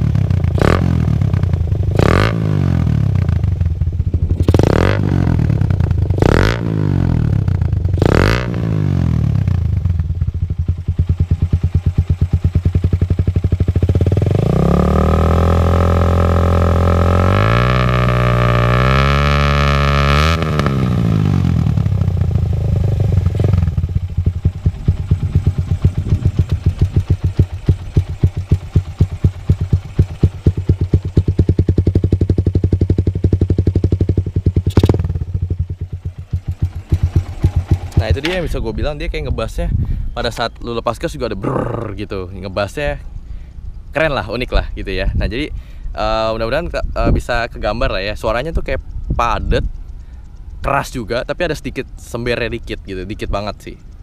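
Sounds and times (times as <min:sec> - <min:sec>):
motorcycle engine revving: 0:00.0 - 0:39.5, 0:41.3 - 0:42.8.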